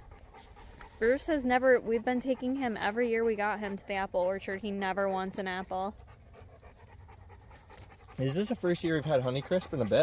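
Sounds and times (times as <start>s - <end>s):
dog panting faintly: 0.0s - 10.0s.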